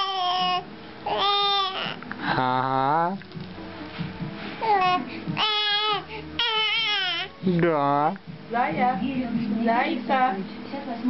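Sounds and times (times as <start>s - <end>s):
baby cooing: 0.0s - 2.6s, 4.6s - 7.4s.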